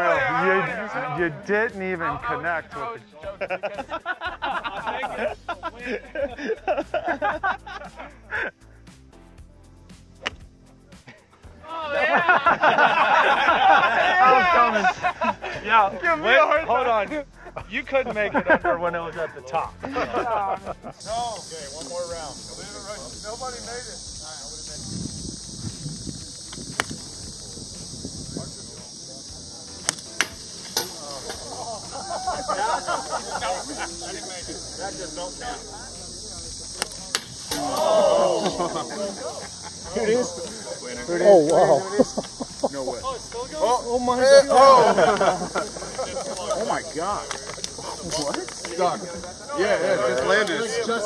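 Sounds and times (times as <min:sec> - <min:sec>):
men laughing and talking: 0:00.0 - 0:09.1, 0:10.8 - 0:51.0
background music: 0:00.0 - 0:51.0
high insect hiss: 0:00.0 - 0:51.0
golf club striking ball: 0:10.2 - 0:10.4, 0:26.5 - 0:27.5, 0:29.8 - 0:31.7, 0:36.7 - 0:37.9
sharp cracks: 0:25.7 - 0:27.6, 0:29.8 - 0:32.1, 0:36.6 - 0:38.0
onlookers calling out: 0:37.5 - 0:39.2.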